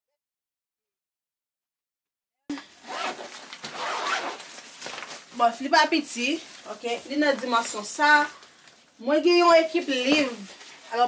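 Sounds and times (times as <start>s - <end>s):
zipper being pulled open: 2.6s - 4.5s
fabric rustling: 2.6s - 11.0s.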